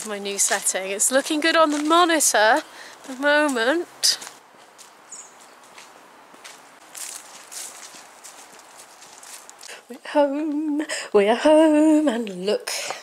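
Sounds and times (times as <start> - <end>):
footsteps on fallen leaves: 0.0 - 9.8
faint outdoor hiss: 0.0 - 13.0.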